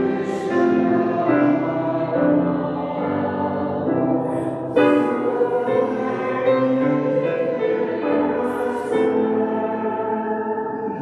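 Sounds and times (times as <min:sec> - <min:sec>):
grand piano chords: 0:00.0 - 0:11.0
voices singing: 0:00.0 - 0:11.0.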